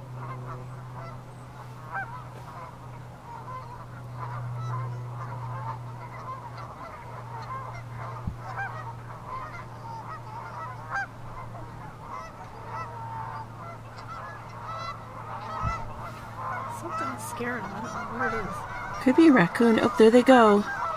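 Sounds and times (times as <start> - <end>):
geese honking: 0.0 - 20.9
steady low hum: 0.0 - 20.9.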